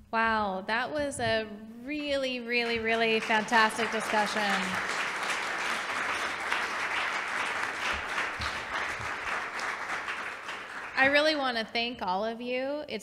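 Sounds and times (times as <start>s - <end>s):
audience applauding: 2.7s - 11.4s.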